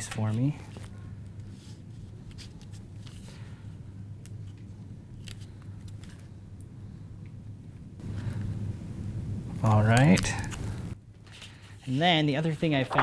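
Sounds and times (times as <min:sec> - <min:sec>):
tape rustling and clicks: 0:00.0 - 0:03.5, 0:04.2 - 0:07.4, 0:09.9 - 0:11.7
low hum: 0:00.8 - 0:11.1.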